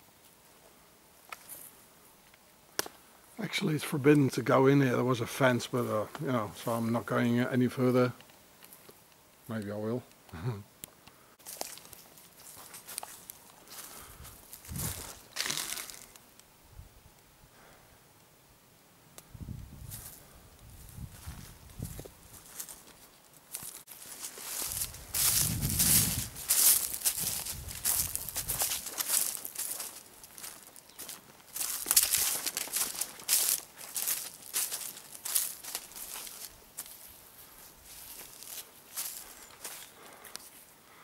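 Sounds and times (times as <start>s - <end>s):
twigs rustling and crackling: 5.7s - 16.5s, 19.9s - 40.6s
footsteps through dry undergrowth: 11.4s - 16.2s, 19.8s - 40.8s.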